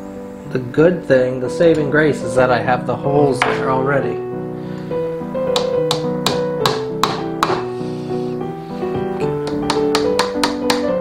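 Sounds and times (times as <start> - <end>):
background music: 0.0 - 11.0
hammer tapping nails into metal: 5.5 - 7.7, 9.4 - 11.0.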